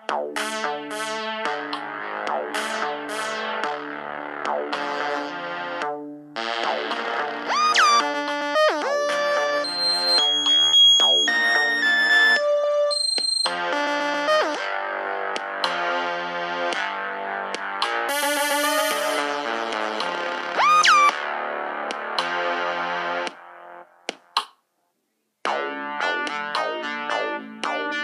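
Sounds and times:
synthesizer keyboard music: 0.0s - 23.4s, 25.5s - 28.0s
swooping synth pitch bends: 7.5s - 8.0s, 20.6s - 21.1s.

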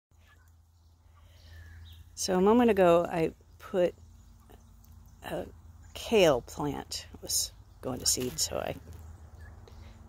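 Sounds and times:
low steady hum: 0.2s - 10.0s
young turkeys chirping: 8.2s - 10.0s.

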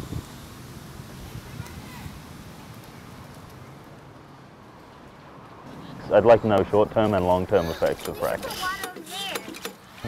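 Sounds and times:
steady outdoor hiss: 0.0s - 10.0s.

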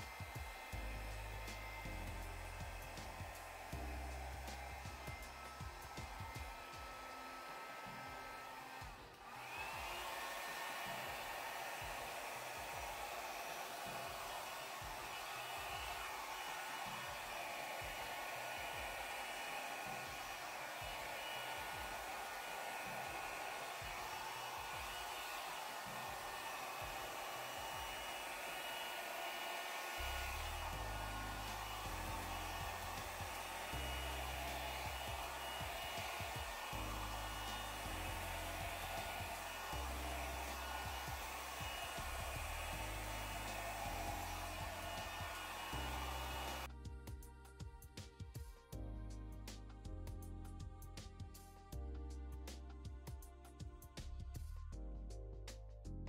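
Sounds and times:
hair dryer running: 0.0s - 46.7s
bass notes of background music: 0.5s - 6.0s, 30.1s - 36.0s, 46.6s - 56.0s.

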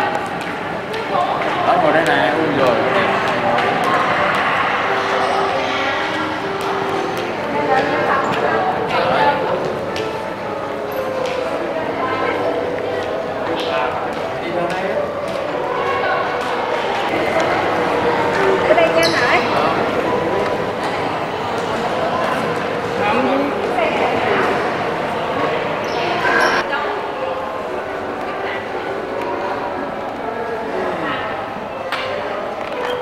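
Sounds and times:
people talking at once: 0.9s - 33.0s.

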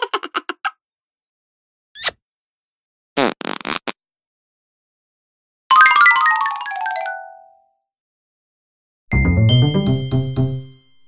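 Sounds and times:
bright bell-like dings: 9.1s - 11.0s.

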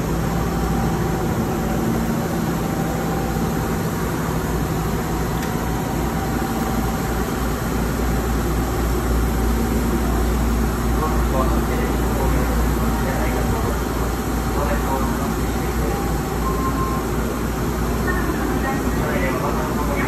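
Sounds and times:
platform ventilation: 0.0s - 20.0s
train rumbling and humming: 0.0s - 20.0s.

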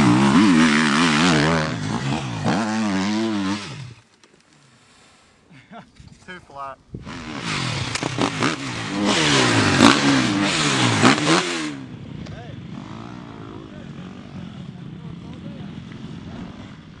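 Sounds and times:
motocross bike engine revving: 0.0s - 4.0s, 7.0s - 17.0s.

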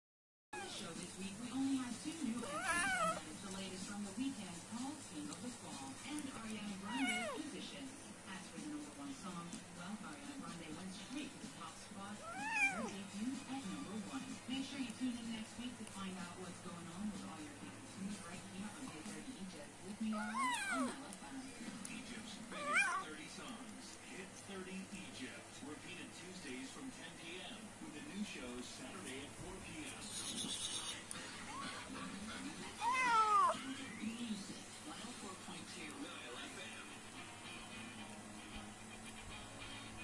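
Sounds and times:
kitten meowing: 2.4s - 3.2s, 6.8s - 7.4s, 12.2s - 12.9s, 22.6s - 23.0s.

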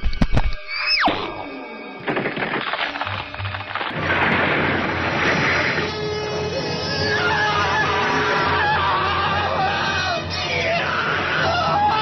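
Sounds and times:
music: 0.0s - 12.0s
dense noisy rumble: 3.7s - 8.0s.

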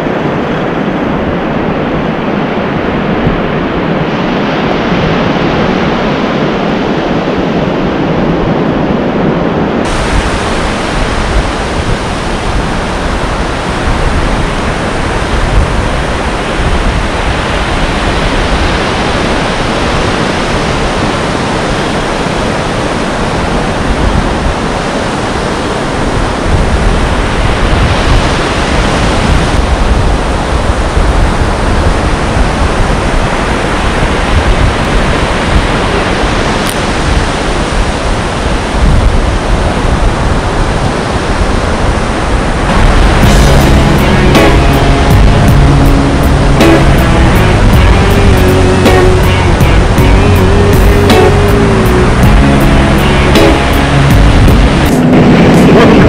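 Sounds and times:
wind on microphone: 0.0s - 56.0s
surf breaking: 9.6s - 56.0s.

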